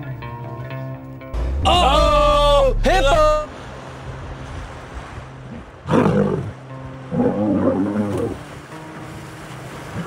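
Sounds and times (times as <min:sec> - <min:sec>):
water splashing and churning: 0:01.4 - 0:10.0.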